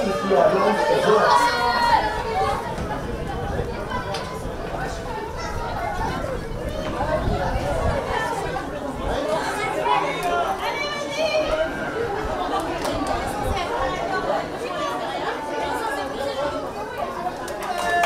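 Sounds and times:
crowd chatting: 0.0 - 18.0.

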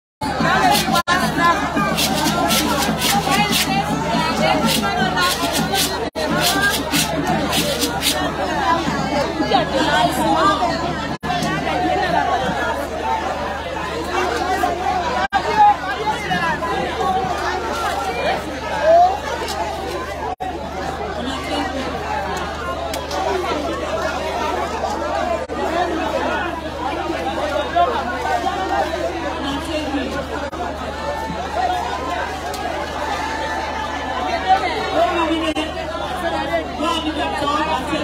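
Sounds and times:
people talking: 0.2 - 38.0.

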